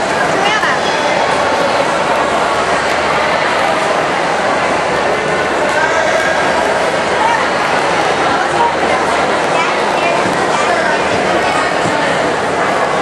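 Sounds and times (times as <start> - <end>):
babble of echoing voices: 0.0 - 13.0.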